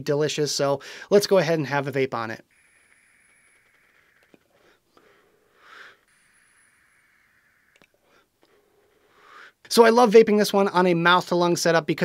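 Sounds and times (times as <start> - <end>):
soft breathy inhale: 0.8 - 1.1, 2.5 - 9.7
faint airflow: 2.4 - 9.7.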